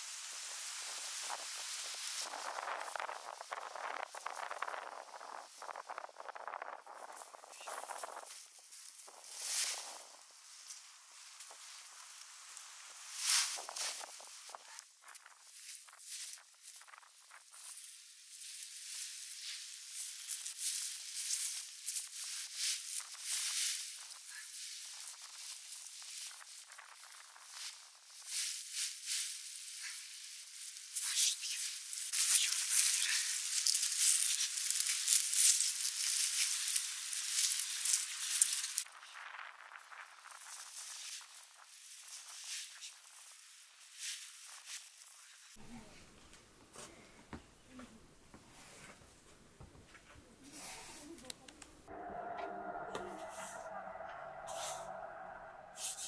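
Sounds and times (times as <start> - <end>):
cut plants rustling and crackling: 28.4 - 39.7, 41.8 - 51.9.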